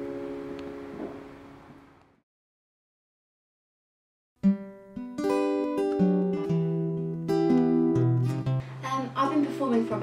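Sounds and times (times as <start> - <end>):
acoustic guitar chord ringing: 0.0 - 1.8, 4.4 - 10.0.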